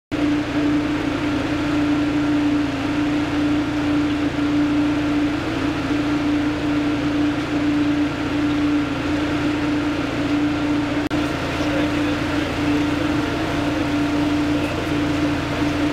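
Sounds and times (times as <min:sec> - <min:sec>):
engine droning: 0:00.1 - 0:15.9.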